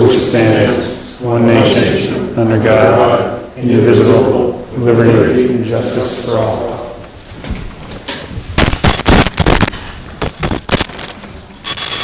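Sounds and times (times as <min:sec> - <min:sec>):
chairs scraping and bumping: 0:06.7 - 0:08.6.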